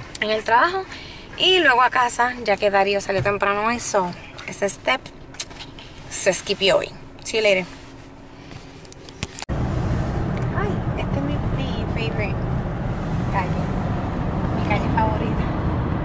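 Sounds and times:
road and engine noise in car: 0:00.0 - 0:16.0.

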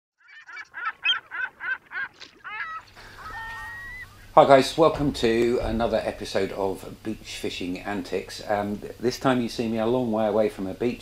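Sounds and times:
bird calling harshly: 0:00.2 - 0:04.4
bird gliding calls: 0:00.2 - 0:04.4
thin high bird tone: 0:02.5 - 0:04.4.

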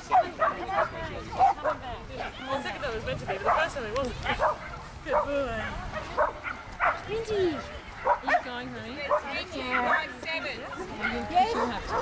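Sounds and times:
dogs barking and yipping: 0:00.0 - 0:12.0
voices: 0:00.0 - 0:12.0.

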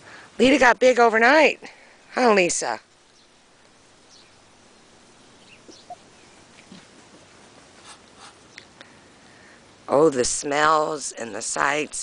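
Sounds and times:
farm birds calling: 0:03.1 - 0:09.7.

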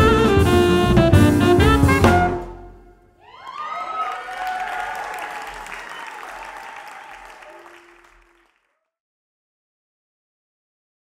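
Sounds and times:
whoops and cheering voices: 0:03.2 - 0:08.4
audience applauding: 0:03.2 - 0:08.7.

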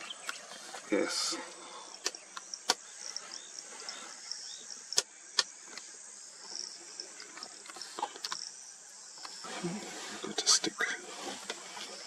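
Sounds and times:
insects chirping: 0:00.0 - 0:12.0
sharp clicks: 0:02.0 - 0:02.8.

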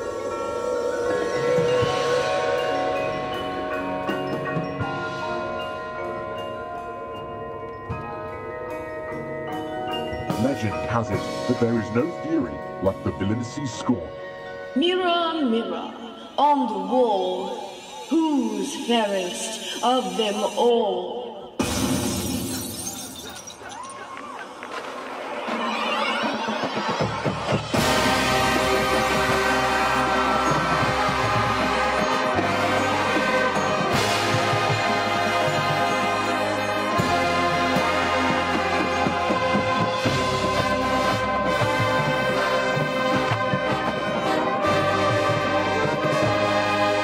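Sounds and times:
ringing mallet percussion: 0:00.0 - 0:15.6
glass shattering: 0:21.6 - 0:24.0
marching band chord: 0:27.6 - 0:47.0.

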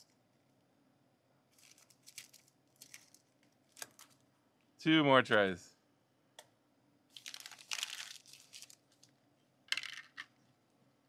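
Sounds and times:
packaging wrappers crinkling: 0:01.5 - 0:04.2, 0:07.1 - 0:10.2.

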